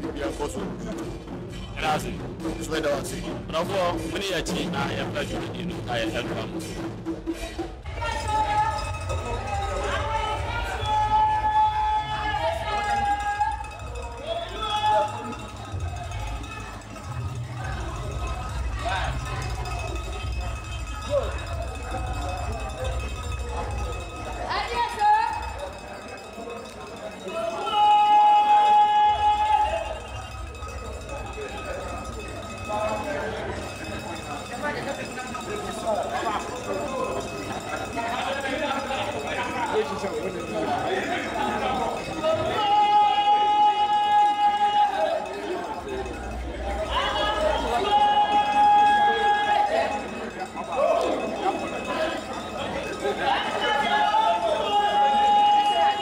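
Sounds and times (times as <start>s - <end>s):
people talking and calling out: 0.0s - 56.0s.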